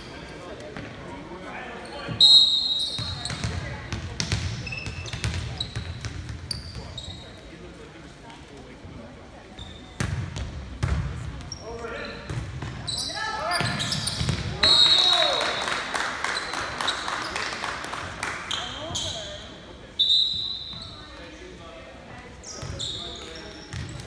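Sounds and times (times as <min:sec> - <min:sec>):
sneakers squeaking: 0:01.8 - 0:07.5, 0:09.5 - 0:15.3, 0:18.4 - 0:21.4, 0:22.2 - 0:24.0
referee's whistle: 0:02.1 - 0:03.2, 0:13.0 - 0:15.5, 0:20.0 - 0:21.0.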